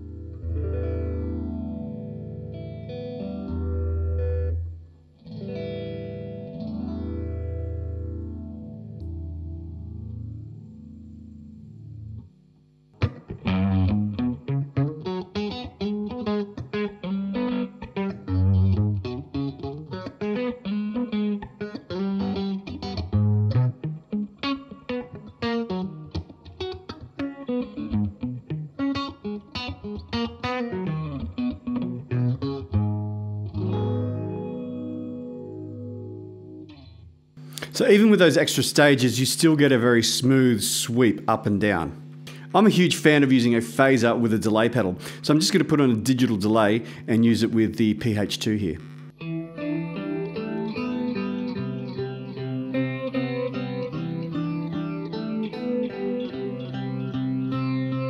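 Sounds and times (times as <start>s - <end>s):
phased electric guitar: 0.0s - 12.3s, 13.0s - 58.0s.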